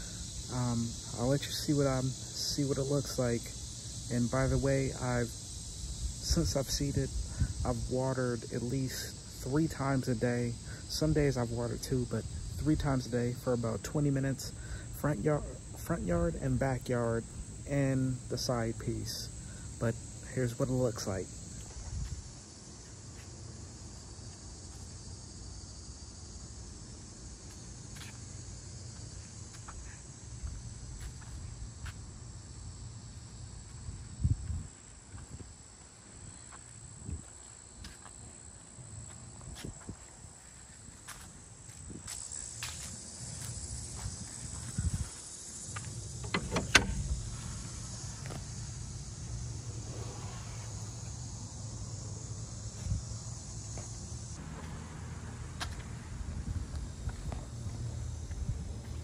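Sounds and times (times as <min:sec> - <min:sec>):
high-pitched insect drone: 0:00.0 - 0:59.0
knocks and thumps: 0:46.2 - 0:47.2.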